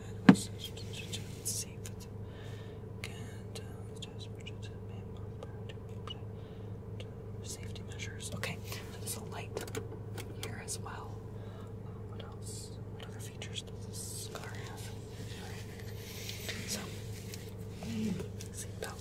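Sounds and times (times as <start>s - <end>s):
person whispering: 0.0s - 2.1s, 3.0s - 6.2s, 7.4s - 9.5s, 11.9s - 19.0s
low hum in car cabin: 0.0s - 19.0s.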